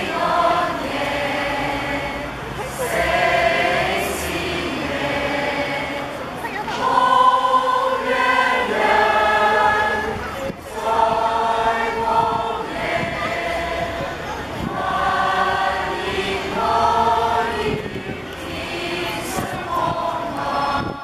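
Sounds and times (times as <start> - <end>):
group singing a carol: 0.0 - 21.0.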